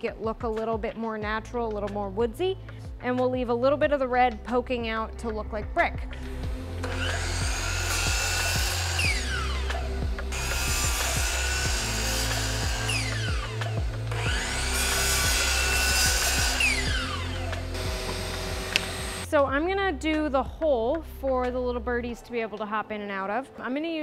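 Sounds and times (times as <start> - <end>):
saw blade whine spinning down: 6.8 - 19.2
miter saw cutting boards: 6.8 - 19.3.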